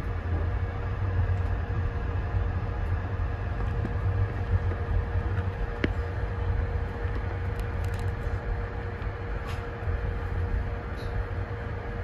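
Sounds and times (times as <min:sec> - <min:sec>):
faint constant hum: 0:00.0 - 0:12.0
train carriage rumble: 0:00.0 - 0:12.0.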